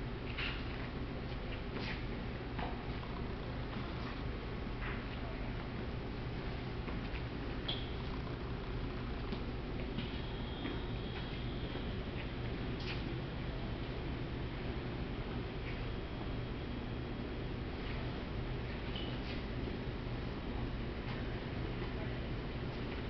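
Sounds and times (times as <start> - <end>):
large room hum: 0.0 - 23.0.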